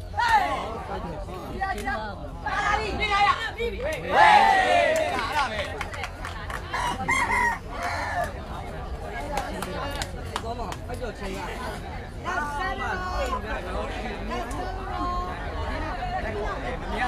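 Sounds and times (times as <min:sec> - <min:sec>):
spectators' voices: 0:00.0 - 0:17.0
shouted calls: 0:06.7 - 0:08.4.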